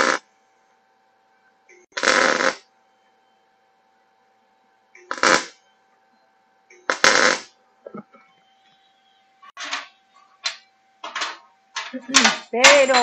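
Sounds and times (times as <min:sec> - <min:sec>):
welding arc bursts: 0:00.0 - 0:00.2, 0:01.8 - 0:02.7, 0:05.0 - 0:05.6, 0:06.8 - 0:07.6
faint steady hum: 0:00.0 - 0:13.0.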